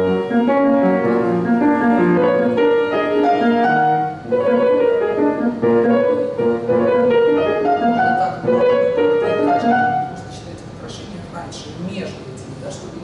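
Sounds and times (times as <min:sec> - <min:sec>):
grand piano classical playing: 0:00.0 - 0:11.7.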